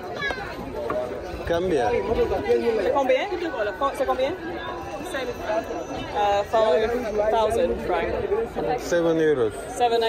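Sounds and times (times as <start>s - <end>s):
market chatter: 0.0s - 10.0s
voices talking: 0.0s - 10.0s.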